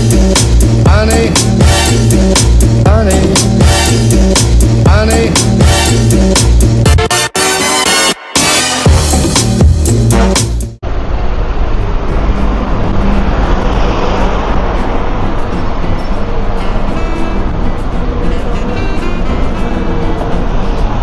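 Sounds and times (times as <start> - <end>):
electronic music: 0.0 - 10.8
cars and buses on avenue: 0.0 - 21.0
minibus driving past: 10.8 - 21.0.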